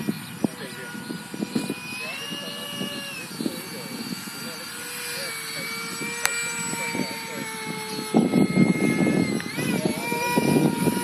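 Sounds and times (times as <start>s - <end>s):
model jet high whine: 0.0s - 11.0s.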